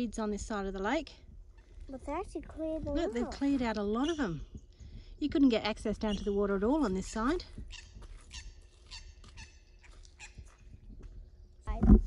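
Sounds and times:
birds chirping: 0.0 - 11.7
wind rumble on microphone: 0.0 - 12.0.

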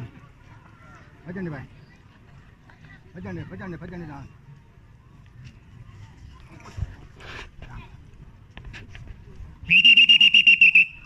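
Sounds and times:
pea whistle trilling blast: 9.7 - 11.0.

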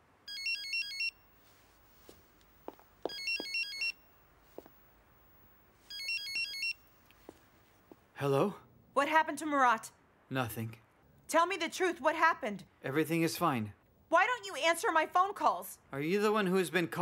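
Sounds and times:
warbling electronic phone ringtone: 0.3 - 1.2, 5.9 - 6.8.

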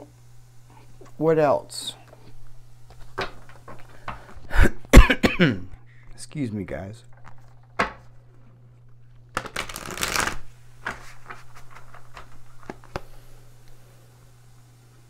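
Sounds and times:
cards being shuffled: 7.1 - 13.3.

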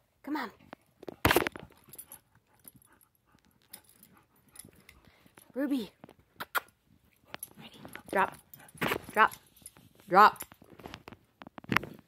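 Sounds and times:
faint rustles and clicks: 0.6 - 12.0.

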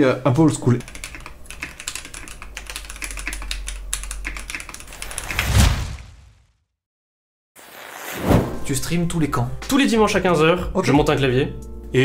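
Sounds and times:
mechanical keyboard typing: 0.7 - 5.4.

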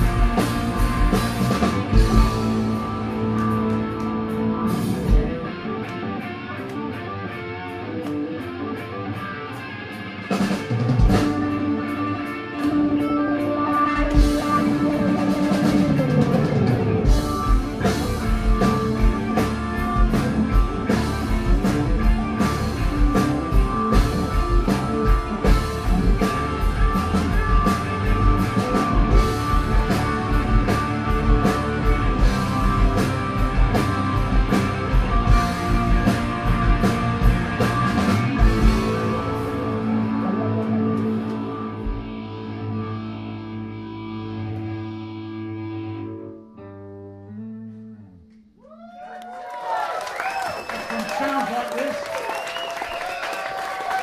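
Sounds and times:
drums: 0.0 - 46.0, 49.0 - 54.0
rock band playing: 0.0 - 48.2, 49.6 - 54.0
electric guitar chord ringing: 11.4 - 48.3.

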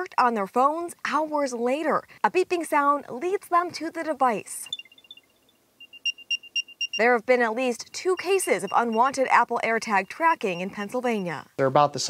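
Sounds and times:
short high-pitched beeps: 4.7 - 7.2, 7.8 - 11.5.

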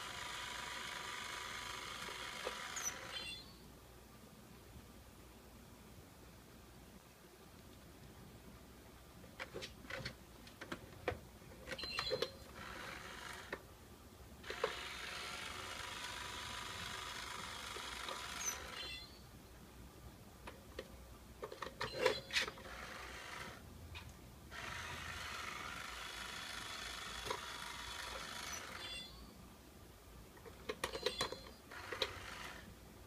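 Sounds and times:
small electric motor whirring: 0.0 - 3.4, 12.5 - 13.6, 14.4 - 18.9, 22.4 - 23.6, 24.5 - 29.1, 31.7 - 32.7.

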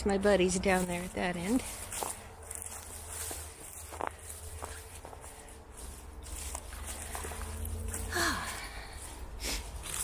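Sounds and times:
footsteps through dry leaves: 0.1 - 10.0.

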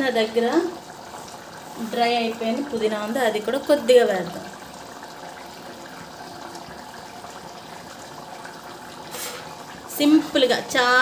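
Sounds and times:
curry boiling with watery hiss: 0.0 - 11.0.

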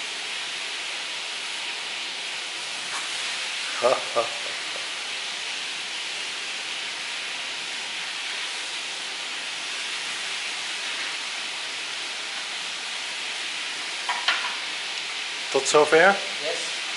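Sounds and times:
steady hiss: 0.0 - 16.9.

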